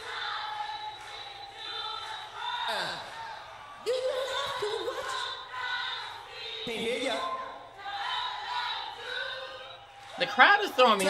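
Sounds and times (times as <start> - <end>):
audience singing and cheering: 0.0 - 11.0.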